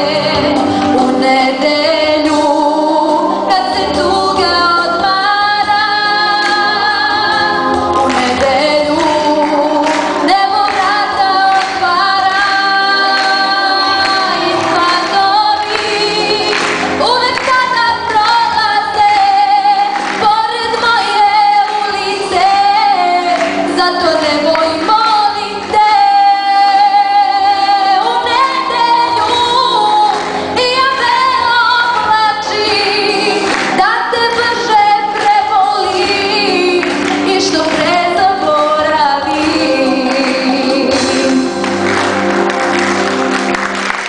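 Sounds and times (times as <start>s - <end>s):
young woman singing: 0.0s - 41.7s.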